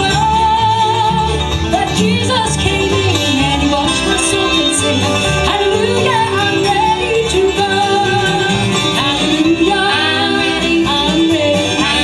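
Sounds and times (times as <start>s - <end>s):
banjo picking: 0.0s - 12.0s
mandolin picking: 0.0s - 12.0s
upright bass: 0.0s - 12.0s
women singing: 0.0s - 12.0s.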